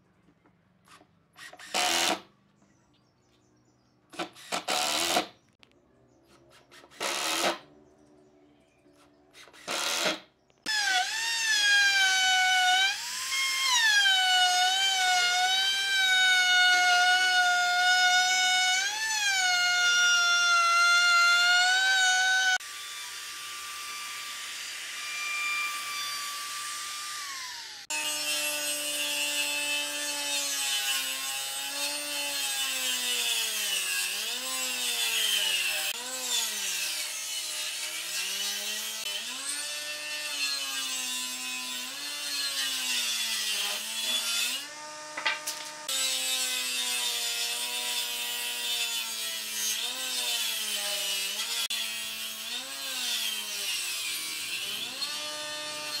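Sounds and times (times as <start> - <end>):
impact driver driving screws: 0.9 - 2.3, 4.1 - 5.4.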